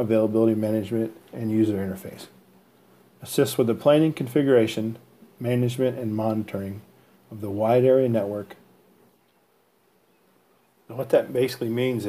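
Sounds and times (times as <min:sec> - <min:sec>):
man speaking: 0:00.0 - 0:02.4, 0:03.2 - 0:08.6, 0:10.9 - 0:12.0
faint low hum: 0:00.0 - 0:12.0.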